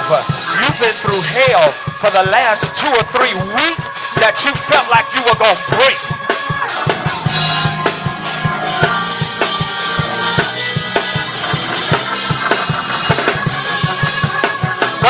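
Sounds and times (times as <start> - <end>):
drum kit fast beat: 0.0 - 15.0
gospel band playing: 0.0 - 15.0.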